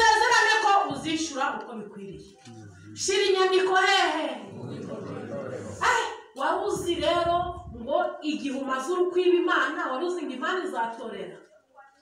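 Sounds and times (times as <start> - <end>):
woman speaking through microphone: 0.0 - 2.4, 3.0 - 4.6, 5.8 - 12.0
low background noise: 0.0 - 12.0.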